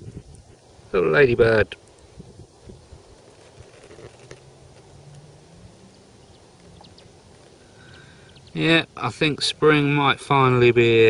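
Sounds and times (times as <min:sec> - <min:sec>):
faint low hum: 0:00.0 - 0:11.0
faint steady hiss: 0:00.0 - 0:11.0
faint ticks: 0:01.8 - 0:02.1, 0:03.3 - 0:05.3, 0:05.9 - 0:08.6.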